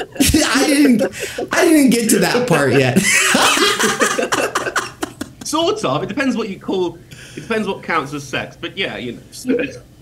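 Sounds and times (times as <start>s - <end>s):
people laughing together: 0.0s - 6.2s.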